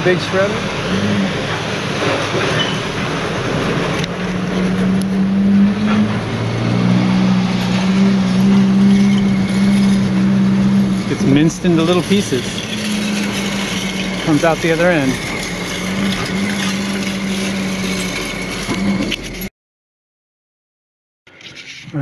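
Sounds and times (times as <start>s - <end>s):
engine drone: 0.0s - 19.5s
shredder grinding: 0.0s - 19.5s.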